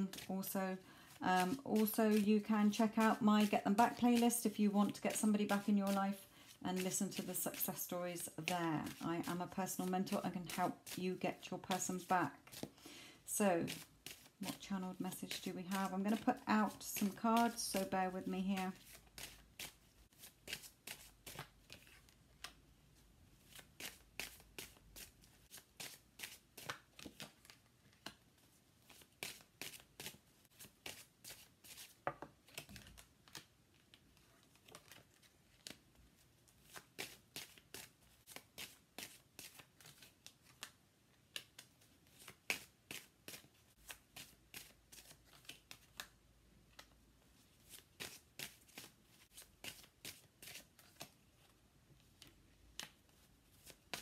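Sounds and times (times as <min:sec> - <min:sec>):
cards being shuffled and dealt: 0:00.0 - 0:22.7, 0:23.4 - 0:54.0.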